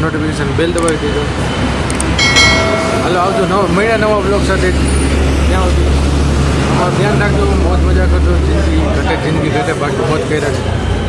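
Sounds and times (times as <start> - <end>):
road traffic rumble: 0.0 - 11.0
man talking: 2.9 - 4.8.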